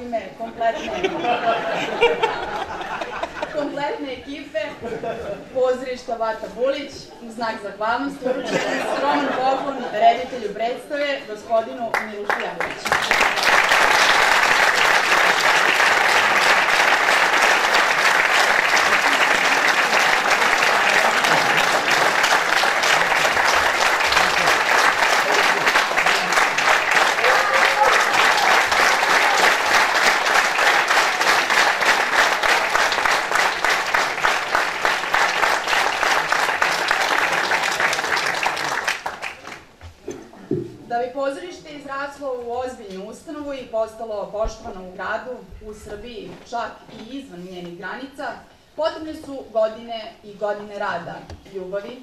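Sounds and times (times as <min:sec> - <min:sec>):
audience applauding: 0:11.9 - 0:39.8.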